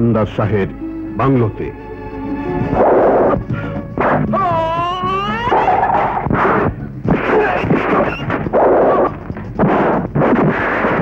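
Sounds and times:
punch hits: 0:04.0 - 0:04.4, 0:06.0 - 0:11.0.

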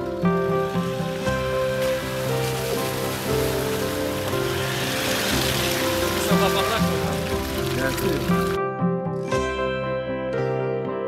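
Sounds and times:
tyres splashing through water: 0:00.0 - 0:08.6
background music with held notes: 0:00.0 - 0:11.0.

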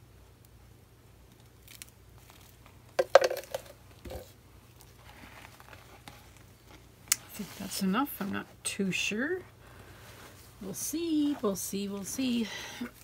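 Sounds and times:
plastic crinkling: 0:01.3 - 0:08.3.

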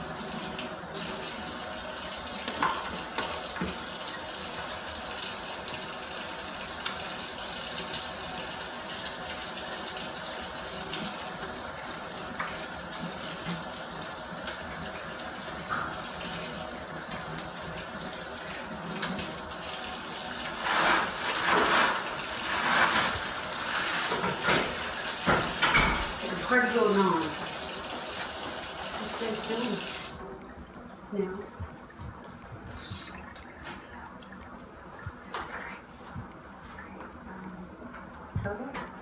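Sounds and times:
faucet running into steel sink: 0:00.0 - 0:30.2.

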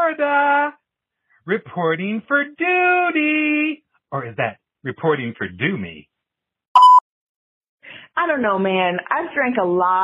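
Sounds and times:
short electronic beep: 0:06.8 - 0:07.0.

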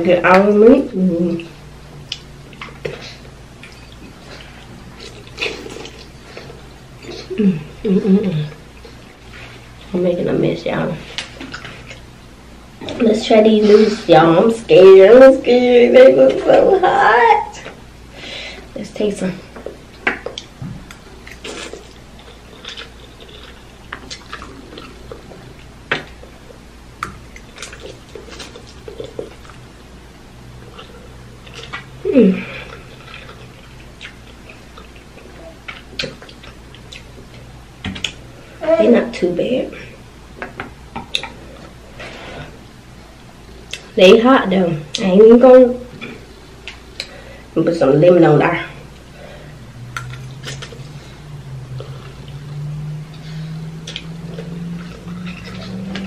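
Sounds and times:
steady low hum: 0:00.0 - 0:56.0
person slurping and chewing noodles: 0:02.6 - 0:07.4, 0:21.2 - 0:26.6, 0:27.2 - 0:29.6.

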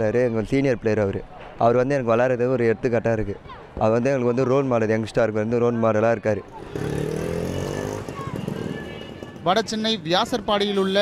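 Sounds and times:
vehicle engine passing: 0:06.6 - 0:09.0.

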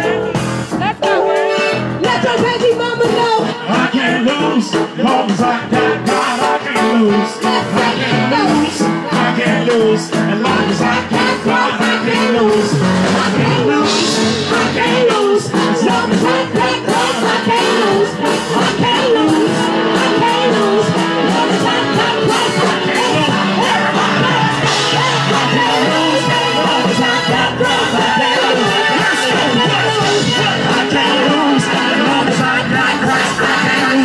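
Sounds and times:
drum kit beat: 0:00.0 - 0:34.0
live band playing: 0:00.0 - 0:34.0
melodic guitar line: 0:00.0 - 0:34.0
woman singing into microphone: 0:02.0 - 0:03.6, 0:07.6 - 0:09.5, 0:10.4 - 0:34.0.

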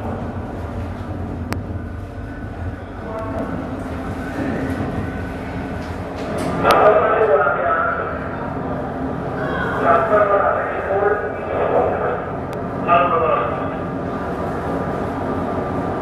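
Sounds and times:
steady low rumble: 0:00.0 - 0:16.0
indistinct voices: 0:02.2 - 0:14.4.

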